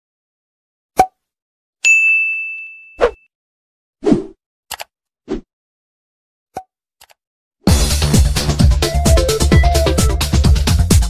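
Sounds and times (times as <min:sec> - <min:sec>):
bright bell ding: 0:01.8 - 0:03.2.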